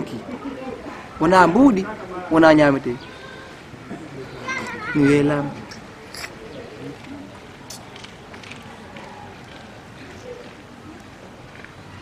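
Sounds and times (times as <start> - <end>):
faint children's voices: 0.0 - 12.0.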